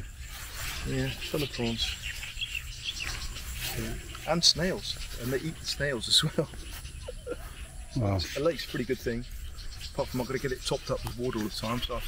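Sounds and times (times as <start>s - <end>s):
bird chirps: 0.0s - 12.0s
insect chirps: 0.0s - 12.0s.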